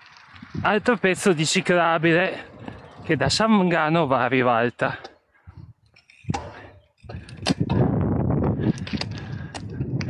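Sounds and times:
bike tyre rumble on asphalt: 0.0s - 4.5s, 5.5s - 10.0s
bike knocking and rattling over bumps: 0.0s - 10.0s.

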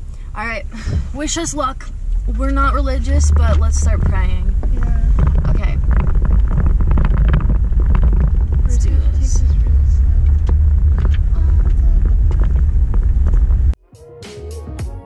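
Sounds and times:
car road rumble: 0.0s - 13.8s
gravel crackles and rattles: 1.2s - 13.8s.

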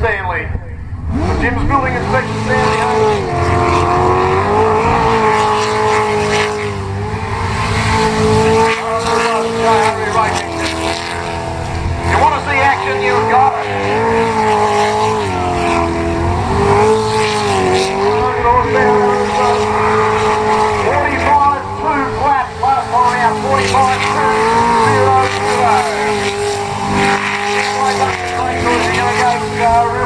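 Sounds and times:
boat engine revving: 0.7s - 30.0s.

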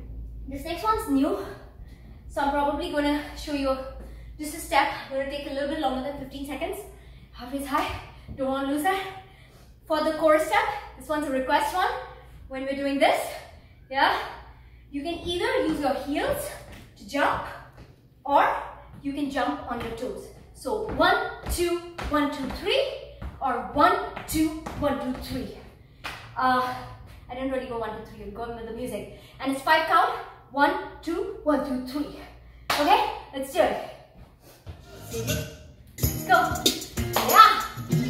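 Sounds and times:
woman speaking: 0.5s - 1.7s, 2.3s - 9.2s, 9.9s - 25.7s, 26.4s - 34.0s
dance steps on wooden floor: 15.1s - 18.0s, 18.8s - 26.2s.

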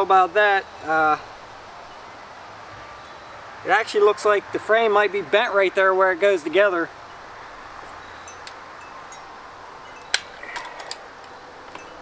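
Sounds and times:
low hiss: 0.0s - 12.0s
metallic hinge clicks: 10.0s - 12.0s.

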